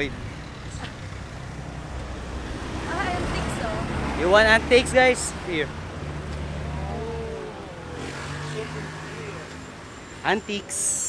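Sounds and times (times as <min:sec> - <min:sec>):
bus engine: 0:00.0 - 0:11.0
passing cars rumble: 0:00.0 - 0:11.0.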